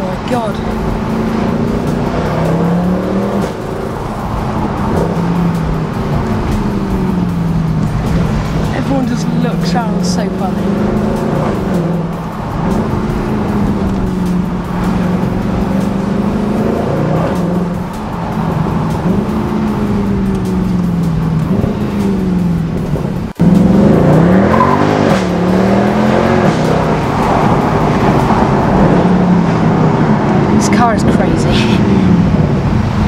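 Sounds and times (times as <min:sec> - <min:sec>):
car engine from inside cabin: 0:00.0 - 0:33.0.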